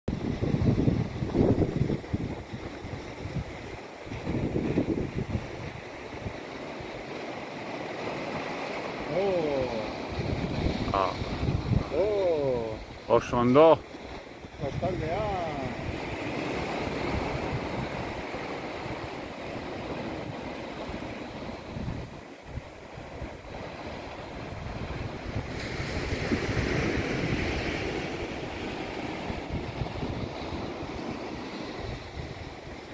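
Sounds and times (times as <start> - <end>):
wind buffeting microphone: 0.1 - 7.3, 9.7 - 32.9
sea water washing on shore: 0.1 - 32.9.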